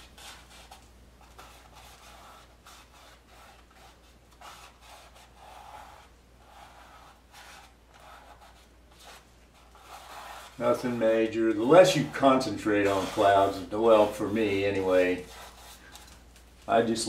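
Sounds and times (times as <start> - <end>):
brush scrubbing on canvas: 0.0 - 16.0.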